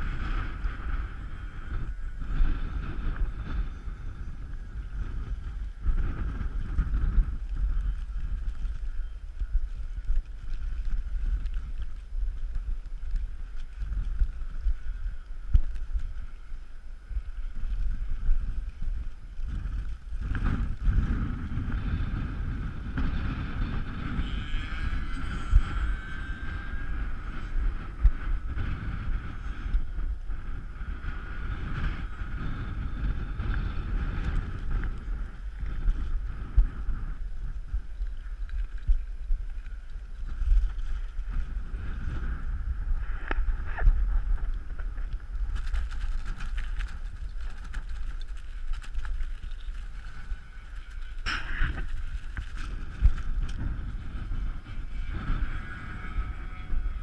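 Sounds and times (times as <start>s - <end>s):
model aircraft motor whine: 0.0s - 57.0s
wind buffeting microphone: 0.0s - 57.0s.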